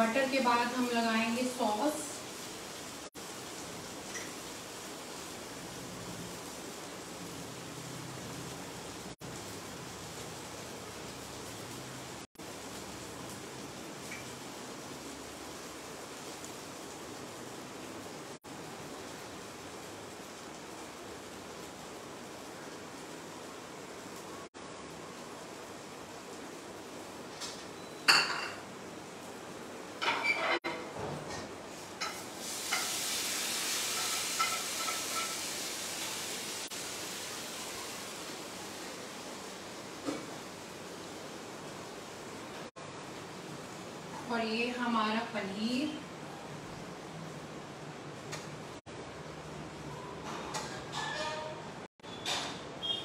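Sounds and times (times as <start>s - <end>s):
dishware clinking on counter: 28.1s - 28.6s, 30.0s - 32.2s, 34.0s - 35.4s, 50.3s - 51.6s
background hiss: 31.6s - 44.1s.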